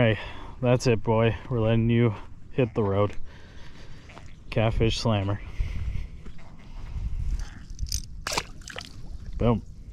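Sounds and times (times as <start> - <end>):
small splashy sounds: 7.9 - 9.1
fish splashing into water: 8.2 - 9.0.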